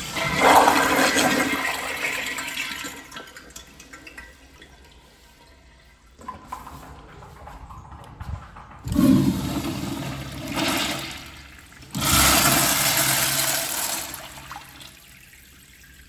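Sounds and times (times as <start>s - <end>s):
urinal flushing: 0.0s - 16.0s.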